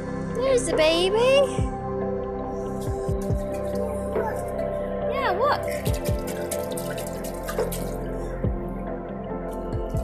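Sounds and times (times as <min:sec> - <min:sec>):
background music with held tones: 0:00.0 - 0:10.0
water splashing and dripping: 0:02.6 - 0:10.0.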